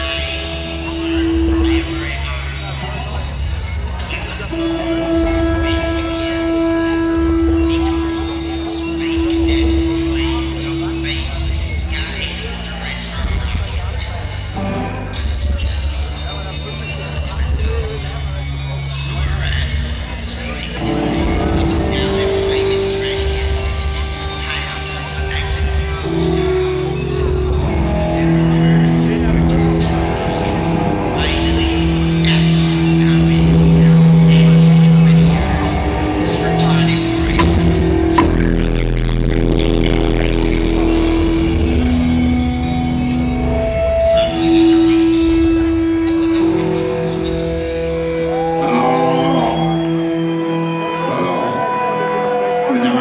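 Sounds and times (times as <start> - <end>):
band playing loud live music: 0.0 - 53.0
crowd chatter: 0.0 - 53.0
amplified electric guitar tone: 4.3 - 11.4, 31.9 - 52.7
upright double bass: 26.2 - 44.1.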